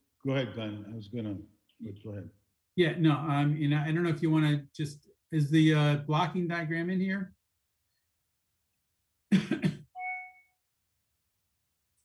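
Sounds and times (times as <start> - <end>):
man coughing: 9.3 - 9.9
faint tone: 10.0 - 10.6.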